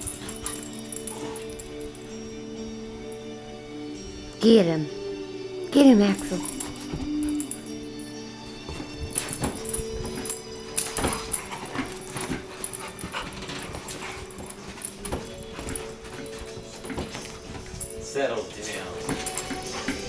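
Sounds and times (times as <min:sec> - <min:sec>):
dogs scuffling: 0:00.0 - 0:04.3, 0:06.1 - 0:20.0
background music: 0:00.0 - 0:20.0
dog whimpering: 0:06.1 - 0:07.7, 0:08.8 - 0:18.0.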